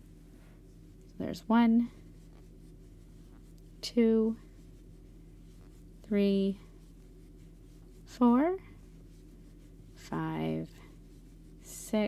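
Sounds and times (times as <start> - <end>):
steady low hum: 0.0 - 12.0
crochet hook rubbing yarn: 0.7 - 12.0.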